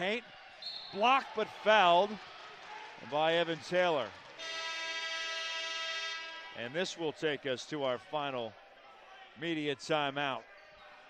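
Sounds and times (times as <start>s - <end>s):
arena horn steady tone: 4.4s - 6.7s.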